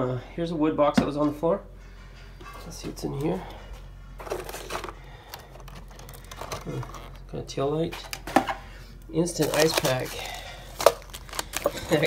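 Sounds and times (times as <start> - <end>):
plastic ice packs rustling: 4.2 - 12.0.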